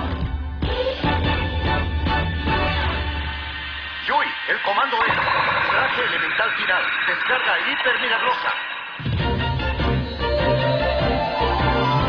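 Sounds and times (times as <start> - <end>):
bass-heavy soundtrack music: 0.0 - 4.6, 9.0 - 12.0
shimmering wash of sound: 2.7 - 10.6.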